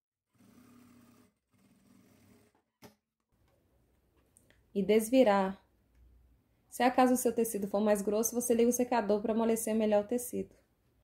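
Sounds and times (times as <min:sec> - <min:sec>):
sewing machine stitching: 0:00.3 - 0:02.7.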